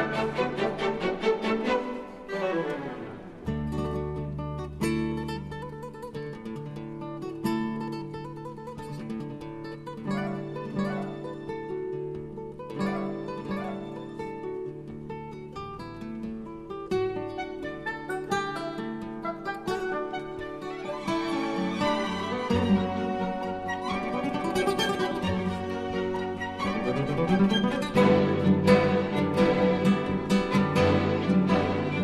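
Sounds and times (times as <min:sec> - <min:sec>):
plucked acoustic guitar music: 0:00.0 - 0:32.0.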